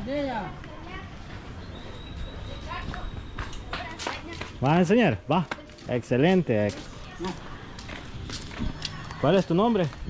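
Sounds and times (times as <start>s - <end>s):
footsteps on cobblestones: 0.4s - 10.0s.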